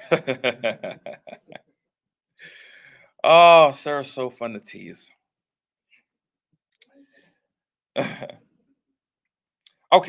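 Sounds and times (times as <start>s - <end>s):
man clearing throat: 8.0s - 8.4s.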